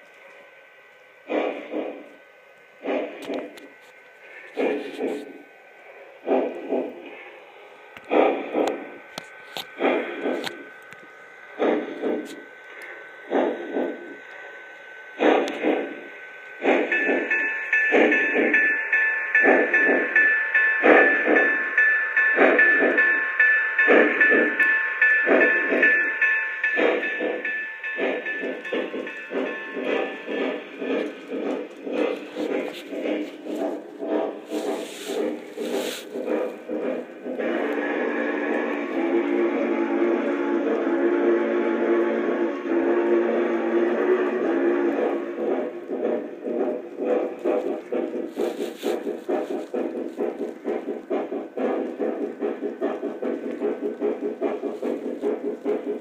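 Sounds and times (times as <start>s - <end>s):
model steam locomotive chuffs: 0.0s - 56.0s
steam whistle blast: 37.4s - 45.5s.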